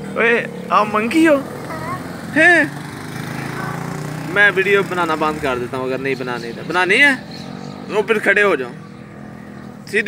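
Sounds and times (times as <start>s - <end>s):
high-pitched speech: 1.6s - 2.1s, 3.4s - 4.0s.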